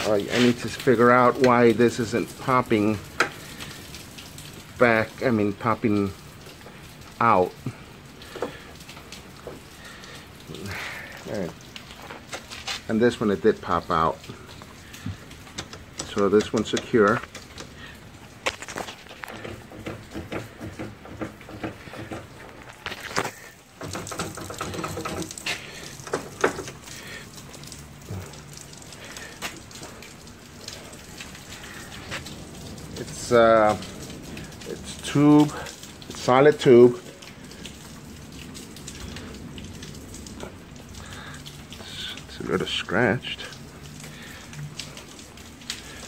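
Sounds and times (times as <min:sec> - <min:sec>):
metal hardware clicks and knocks: 0:19.2 - 0:22.8, 0:23.8 - 0:25.4.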